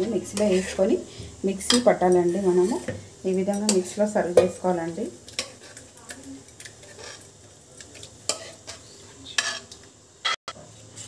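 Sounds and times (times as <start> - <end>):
spoon scraping steel cookware: 0.3 - 0.8, 5.4 - 7.4, 8.3 - 9.8.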